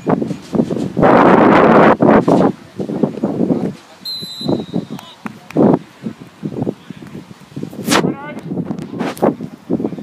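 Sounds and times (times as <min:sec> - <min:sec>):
referee's whistle: 0:04.0 - 0:05.2.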